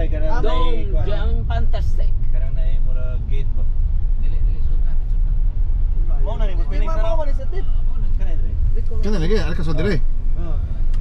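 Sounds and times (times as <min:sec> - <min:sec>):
people talking: 0:00.0 - 0:05.3, 0:06.1 - 0:10.8
vehicle engine and road noise: 0:00.0 - 0:11.0.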